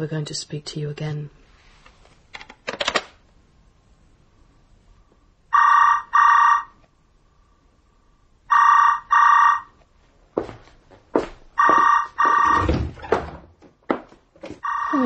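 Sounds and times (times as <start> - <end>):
telephone ringing: 5.5 - 6.8, 8.5 - 9.7, 11.6 - 12.7, 14.6 - 15.0
knocks and thuds: 11.8 - 14.6.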